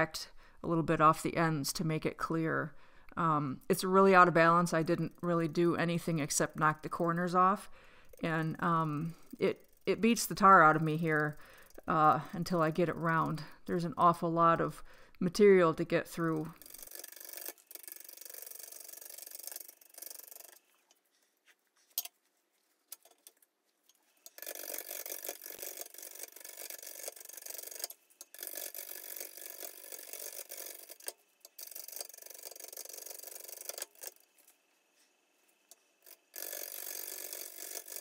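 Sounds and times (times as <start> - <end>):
gouge cutting wood on lathe: 24.3 - 34.3, 36.0 - 38.0.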